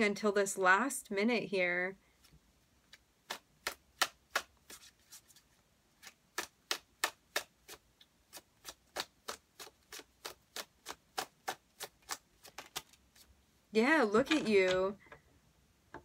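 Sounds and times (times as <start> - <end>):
cards being shuffled: 2.9 - 6.8, 7.4 - 13.3.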